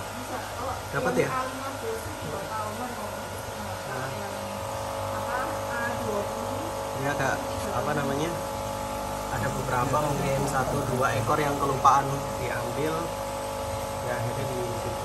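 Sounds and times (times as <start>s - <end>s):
steady machine hum: 0.0s - 15.0s.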